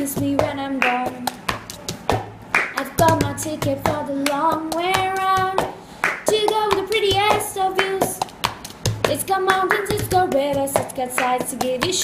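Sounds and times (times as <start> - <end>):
young woman singing: 0.0 - 1.5, 2.6 - 8.3, 9.0 - 12.0
hand claps: 0.1 - 12.0.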